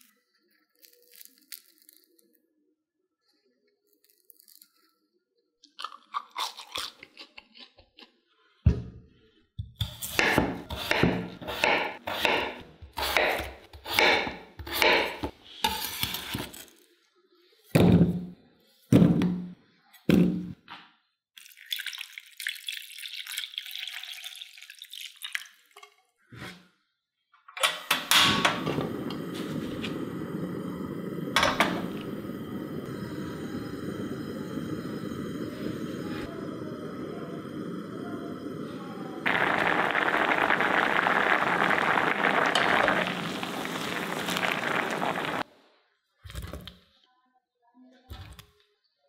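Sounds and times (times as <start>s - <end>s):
crunching of fried snack: 0.0s - 2.4s, 3.9s - 4.9s, 5.8s - 8.1s
water pouring into pan: 21.4s - 25.8s, 28.8s - 45.5s.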